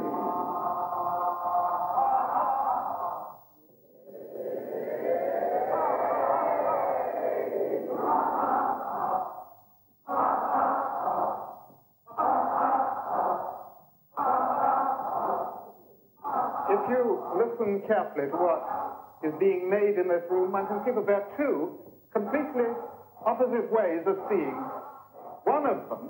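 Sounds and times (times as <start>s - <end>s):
voices making sustained vocal tones: 0.0s - 26.0s.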